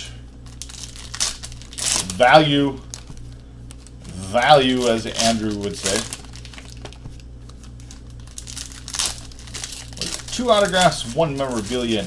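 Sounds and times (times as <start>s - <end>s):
plastic wrapper crinkling: 0.4s - 12.0s.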